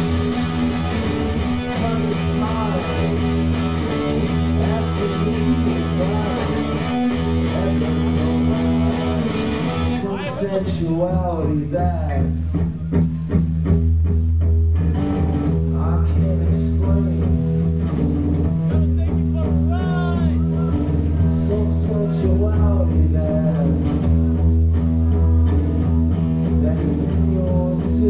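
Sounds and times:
live rock band droning: 0.0s - 28.0s.

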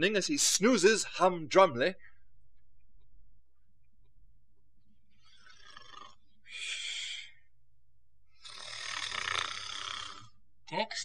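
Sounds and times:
person snoring: 5.3s - 7.4s, 8.4s - 10.4s.

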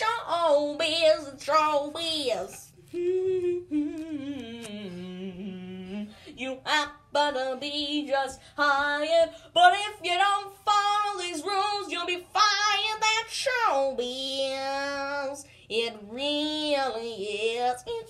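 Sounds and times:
high solo voice singing: 2.2s - 6.9s.

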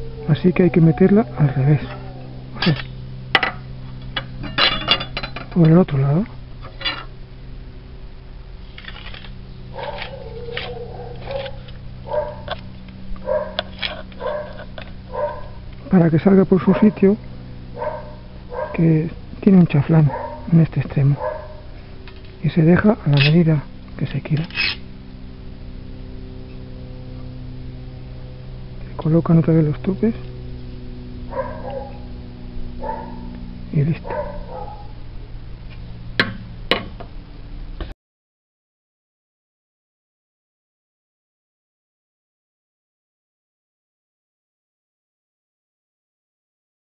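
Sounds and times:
steady low hum: 0.0s - 37.9s
dog barking: 9.7s - 12.6s, 13.2s - 15.6s, 16.6s - 17.1s, 17.8s - 18.9s, 20.0s - 21.8s, 31.3s - 32.1s, 32.8s - 33.3s, 34.0s - 35.0s
metal rod knocking on stone: 36.2s - 37.1s.

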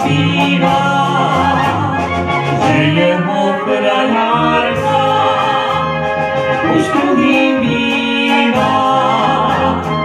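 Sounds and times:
woman singing: 0.0s - 5.9s, 6.6s - 10.0s
brass band playing: 0.0s - 10.0s
tuba bass notes: 0.0s - 10.0s.

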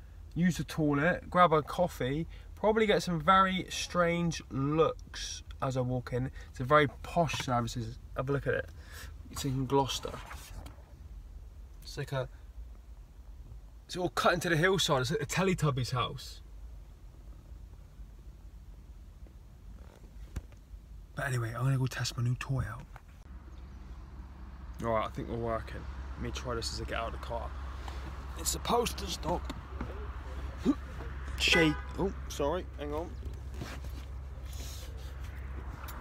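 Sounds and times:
low rumble inside car: 0.0s - 36.0s
clothing rustle: 33.3s - 36.0s.

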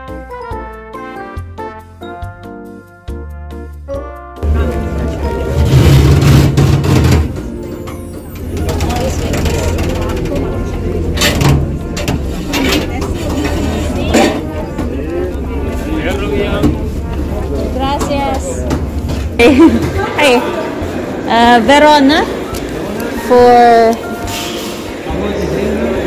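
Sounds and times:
music: 0.0s - 19.6s, 22.2s - 26.0s
boat engine rumbling: 4.4s - 21.2s
indistinct voices: 8.2s - 26.0s.

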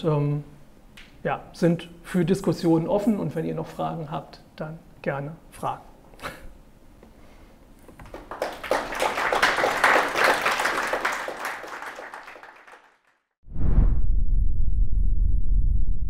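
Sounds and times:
audience applause: 8.0s - 13.3s.

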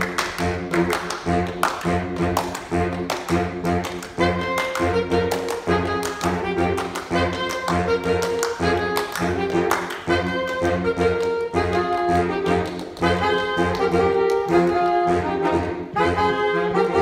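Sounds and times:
bass saxophone low notes: 0.0s - 17.0s
higher saxophones holding notes: 0.0s - 17.0s.

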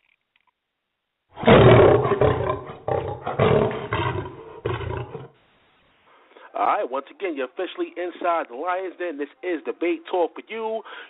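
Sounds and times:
lion roaring: 1.4s - 5.3s.

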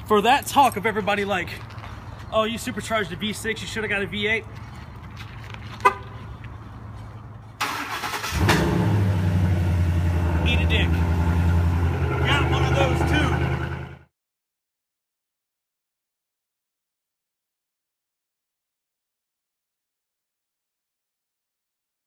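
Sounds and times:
engine starting and idling: 7.6s - 9.8s.

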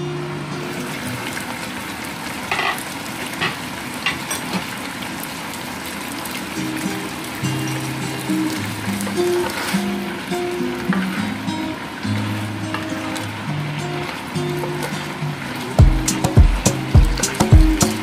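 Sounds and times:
ribs sizzling in a pan: 1.0s - 10.5s
background music: 15.8s - 18.0s.

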